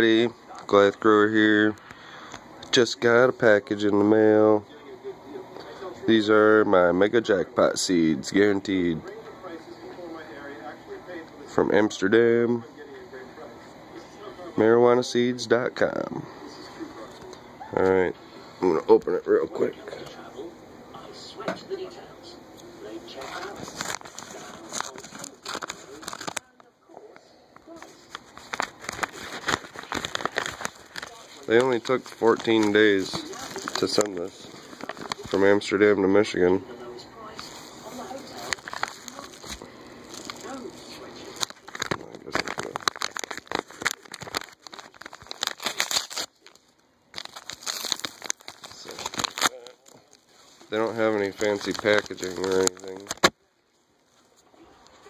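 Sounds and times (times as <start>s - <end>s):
paper envelope crinkling and tearing: 23.2s - 26.5s, 27.7s - 36.0s, 37.4s - 53.4s.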